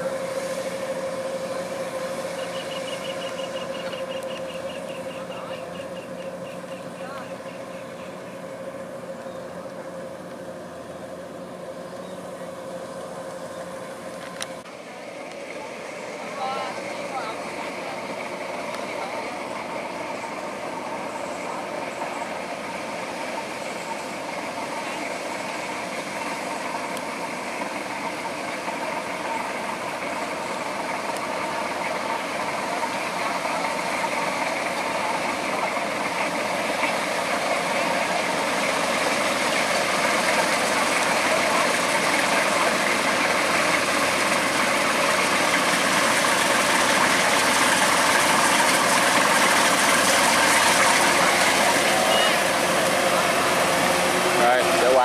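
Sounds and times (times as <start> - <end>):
combine harvester running: 0.0 - 55.0.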